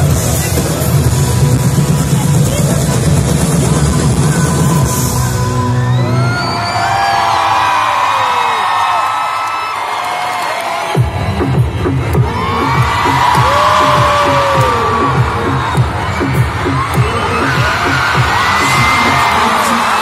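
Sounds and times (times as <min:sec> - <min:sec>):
pulsing bass beat: 0:00.0 - 0:05.3, 0:11.0 - 0:19.6
live pop music: 0:00.0 - 0:07.2, 0:11.0 - 0:20.0
crowd cheering and whooping: 0:04.8 - 0:20.0.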